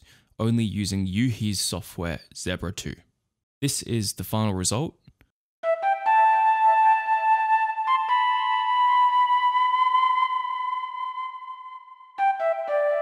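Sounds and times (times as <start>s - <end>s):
synthesized flute notes: 5.6s - 13.0s.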